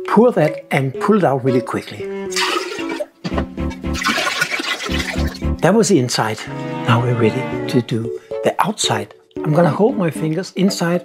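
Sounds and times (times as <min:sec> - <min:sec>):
background guitar music: 0:00.0 - 0:11.0
liquid glaze pouring into tub: 0:01.6 - 0:03.1, 0:03.7 - 0:05.6.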